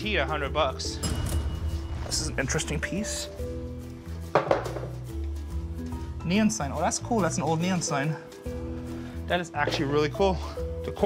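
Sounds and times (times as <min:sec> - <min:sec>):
knocks on wooden case: 0:04.3 - 0:05.0.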